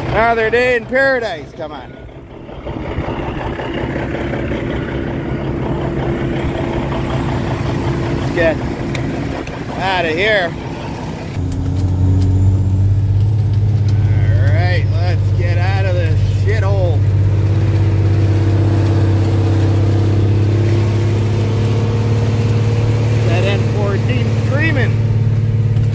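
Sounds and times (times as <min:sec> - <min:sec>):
diesel truck engine droning: 0:00.0 - 0:25.9.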